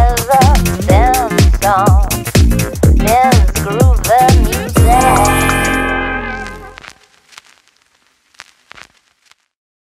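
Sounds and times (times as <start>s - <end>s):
music: 0.0s - 6.8s.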